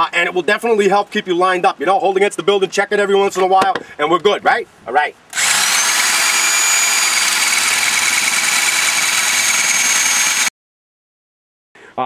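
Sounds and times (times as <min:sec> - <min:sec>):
hammer drill drilling into concrete: 0:05.3 - 0:10.5.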